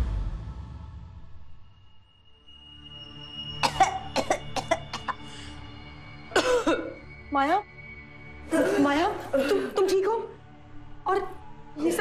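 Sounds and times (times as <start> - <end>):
woman coughing: 3.6 - 5.3, 6.3 - 7.0, 8.5 - 10.0.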